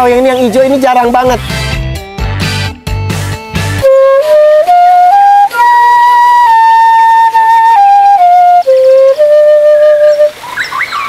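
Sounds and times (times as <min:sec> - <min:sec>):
flute playing slow melody: 0:03.8 - 0:11.0
bird chirps: 0:10.1 - 0:11.0.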